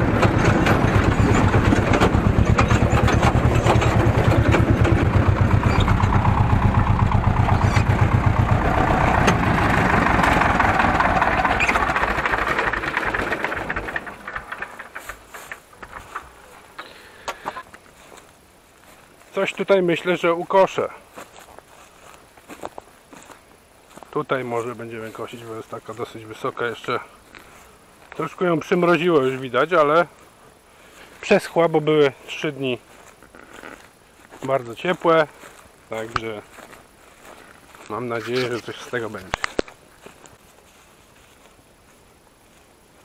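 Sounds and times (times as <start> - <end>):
faint steady hiss: 14.4 - 43.0
footsteps on grass: 15.0 - 43.0.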